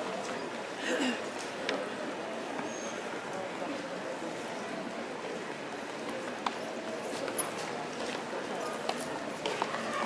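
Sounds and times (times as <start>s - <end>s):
murmur of crowd: 0.0s - 10.0s.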